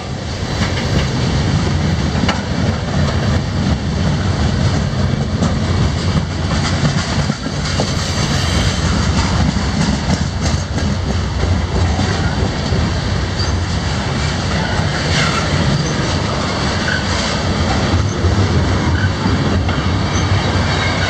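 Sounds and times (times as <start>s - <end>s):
train wheels rolling on rails: 0.0s - 21.0s.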